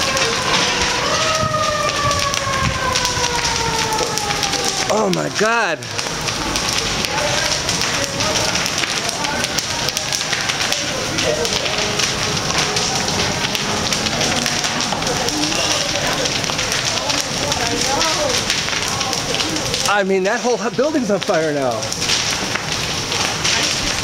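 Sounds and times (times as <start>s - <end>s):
faint voices: 0.0s - 24.0s
large fire crackling: 0.0s - 24.0s.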